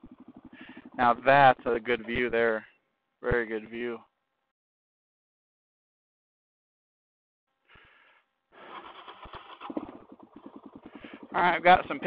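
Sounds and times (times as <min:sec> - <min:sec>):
motorcycle engine idling: 0:00.0 - 0:02.8, 0:08.8 - 0:12.0.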